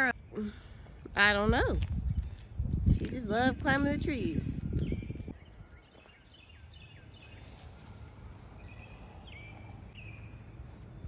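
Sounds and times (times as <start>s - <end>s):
distant birds chirping: 0.0s - 11.0s.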